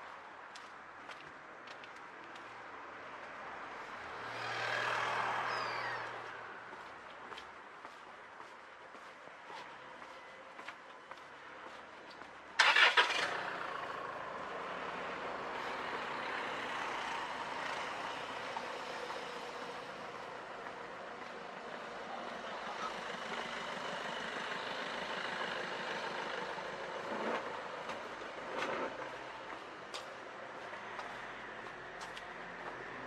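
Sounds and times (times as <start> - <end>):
vehicle engine starting and running: 12.6 - 20.3, 22.3 - 29.3.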